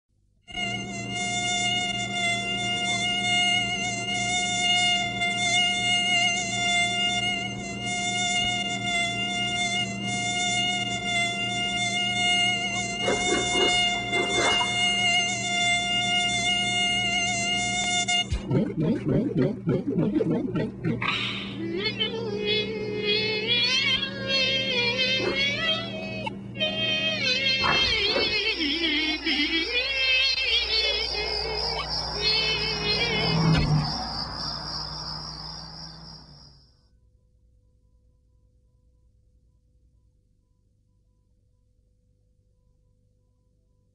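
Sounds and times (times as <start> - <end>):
mosquito whine: 0.5 - 36.8
low steady hum: 16.5 - 36.3.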